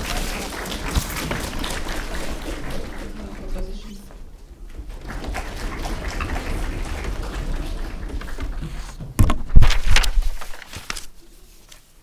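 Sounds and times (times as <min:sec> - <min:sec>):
audience applauding: 0:00.0 - 0:03.9, 0:05.0 - 0:08.7.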